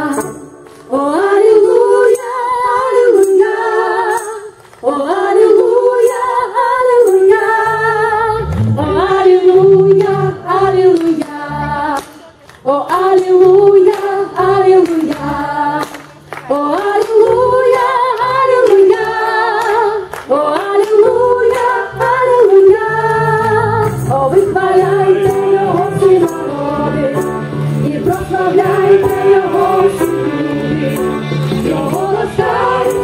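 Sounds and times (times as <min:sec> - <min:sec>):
women singing slow melody: 0:00.0 - 0:33.0.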